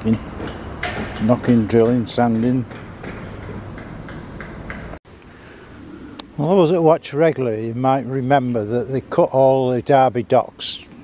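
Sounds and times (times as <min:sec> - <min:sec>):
sharp construction knocking: 0:00.0 - 0:05.0
steady background noise: 0:00.0 - 0:11.0.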